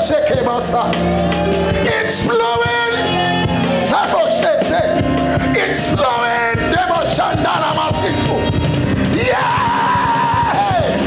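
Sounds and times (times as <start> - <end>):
church music: 0.0 - 11.0.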